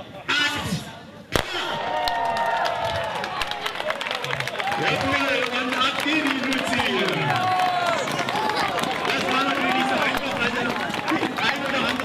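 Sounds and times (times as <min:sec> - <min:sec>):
starting pistol shot: 0:01.3 - 0:01.8
crowd cheering and shouting: 0:01.4 - 0:12.0.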